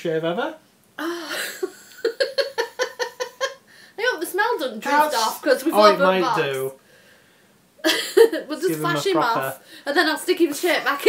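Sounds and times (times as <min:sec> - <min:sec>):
woman laughing: 0:01.0 - 0:03.6, 0:07.8 - 0:08.8.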